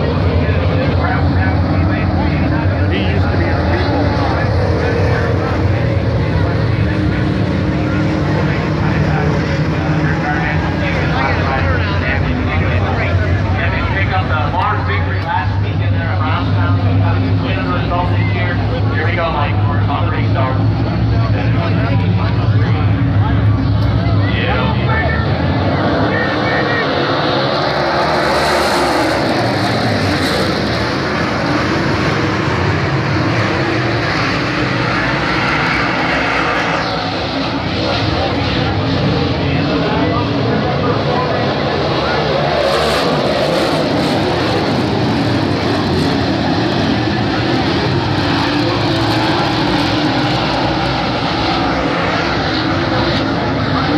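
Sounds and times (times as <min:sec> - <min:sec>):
race car engines at speed: 0:00.0 - 0:53.9.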